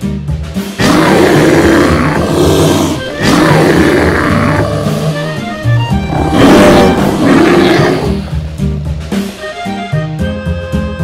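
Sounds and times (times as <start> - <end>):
background music: 0.0 - 11.0
bear roaring: 0.8 - 8.4.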